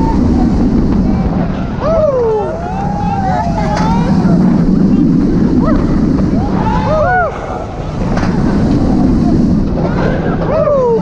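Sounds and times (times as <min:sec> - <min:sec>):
riders screaming: 0:00.0 - 0:01.0, 0:01.7 - 0:07.8
roller coaster rumbling on track: 0:00.0 - 0:11.0
wind rushing over microphone: 0:00.0 - 0:11.0.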